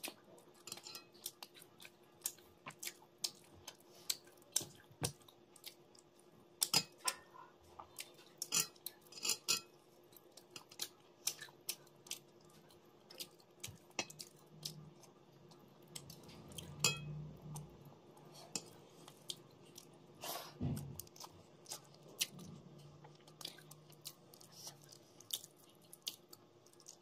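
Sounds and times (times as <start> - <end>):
faint steady hum: 0.0 - 27.0.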